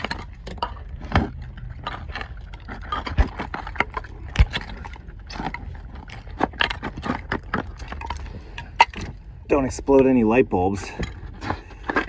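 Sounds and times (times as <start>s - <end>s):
digging scrapes and knocks: 0.0s - 10.0s, 10.7s - 12.0s.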